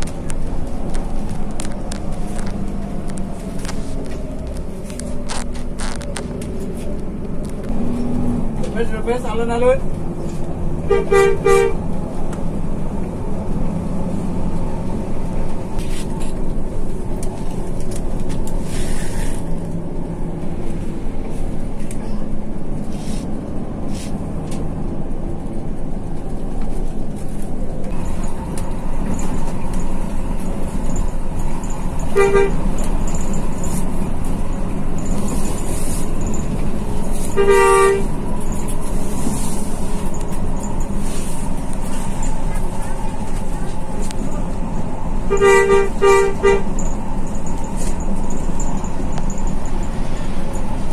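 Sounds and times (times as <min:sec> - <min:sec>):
bus engine and road drone: 0:00.0 - 0:50.9
horn toots: 0:10.9 - 0:11.8, 0:32.1 - 0:32.8, 0:37.1 - 0:38.1, 0:45.3 - 0:46.8.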